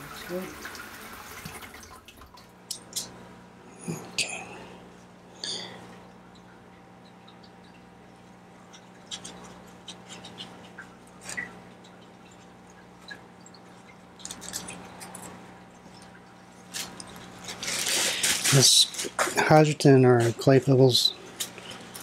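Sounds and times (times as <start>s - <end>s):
steady low hum: 2.0s - 22.0s.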